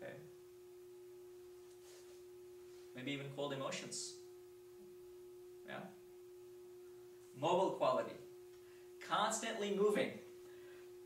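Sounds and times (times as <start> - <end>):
steady hum: 0.0 - 11.0.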